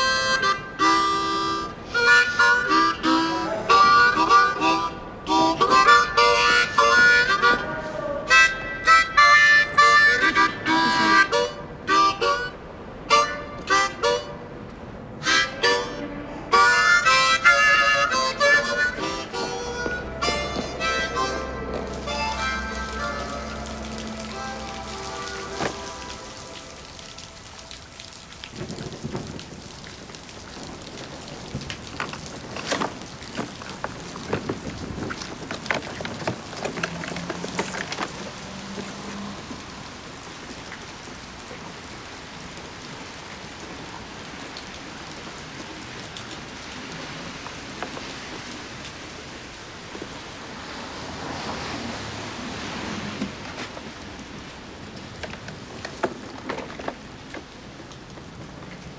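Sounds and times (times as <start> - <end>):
music score: 0.0 - 28.4
steady rain: 0.0 - 58.9
low rumbles: 18.6 - 37.4.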